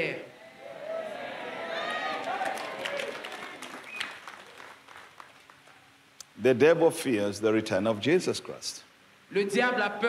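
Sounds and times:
congregation applauding: 1.6 - 5.9.

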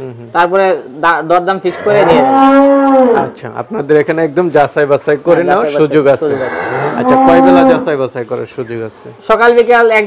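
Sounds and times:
cow mooing: 1.7 - 3.4, 6.3 - 8.0.

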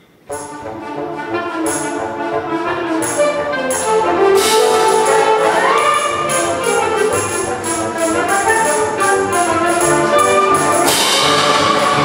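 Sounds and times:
concert band playing brass: 0.3 - 12.0.

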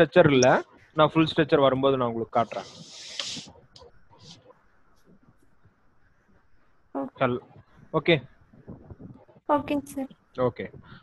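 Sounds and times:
steady hiss: 2.1 - 3.6.

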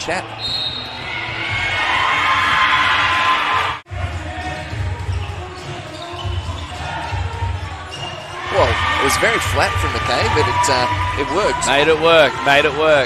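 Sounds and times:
crowd noise in a hall: 0.0 - 13.0.

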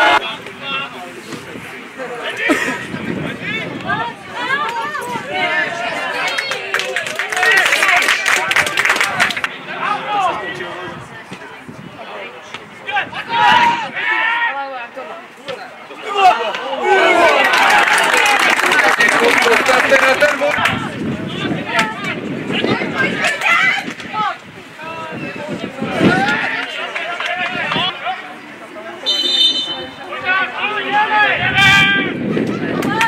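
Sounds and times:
voices shouting and calling: 0.0 - 33.0
men shouting: 16.0 - 18.9.

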